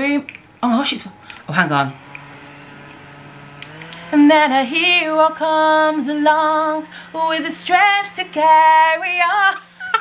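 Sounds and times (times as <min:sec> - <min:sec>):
handheld fan motor whirring: 0:00.7 - 0:10.0.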